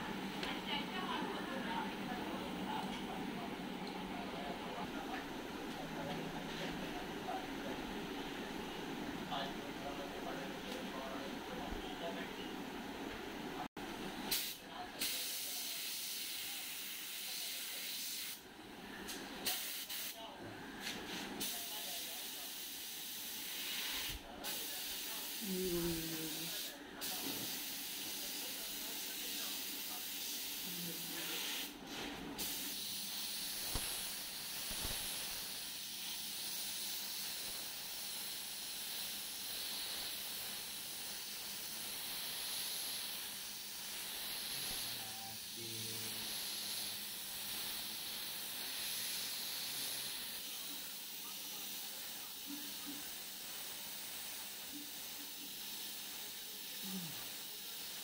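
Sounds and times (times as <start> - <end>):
airbrush hiss of compressed air: 14.3 - 18.4, 19.4 - 20.2, 21.1 - 58.0.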